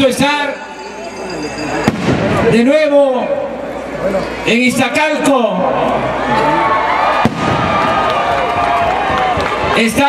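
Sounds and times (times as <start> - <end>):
crowd cheering and shouting: 0.0 - 10.0
sharp bang: 1.8 - 2.7.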